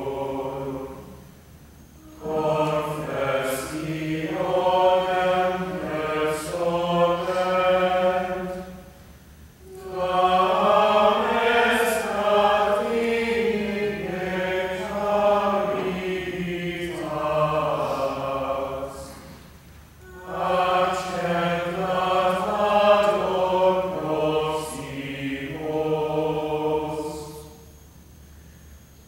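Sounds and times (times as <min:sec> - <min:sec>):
choir singing plainchant: 0:00.0 - 0:27.8.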